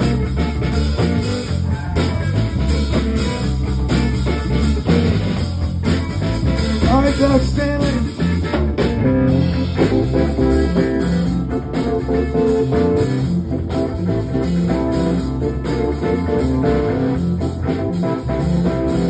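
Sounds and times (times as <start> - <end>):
bass line: 0.0 - 19.0
drums: 0.0 - 19.0
electric guitar: 0.0 - 19.0
keyboard: 0.0 - 19.0.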